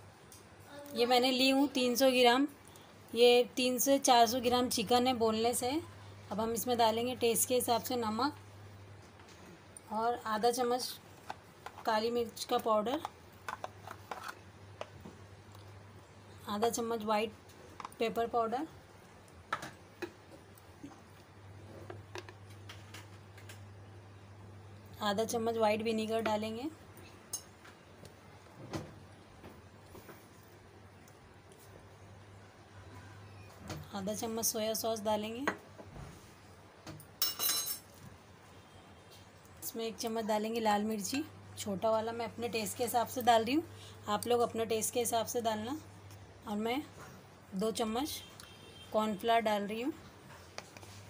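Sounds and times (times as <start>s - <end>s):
faint steady hum: 0.0s - 51.0s.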